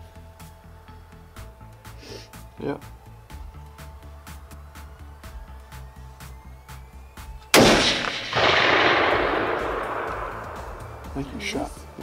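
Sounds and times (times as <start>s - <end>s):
background music with steady beat: 0.0s - 12.0s
rifle shot with rolling echo: 7.5s - 11.6s.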